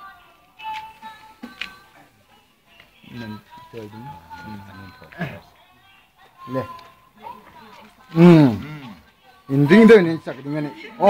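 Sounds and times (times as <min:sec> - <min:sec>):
faint steady musical tones: 0:00.0 - 0:11.0
people talking: 0:03.0 - 0:05.6, 0:06.4 - 0:11.0.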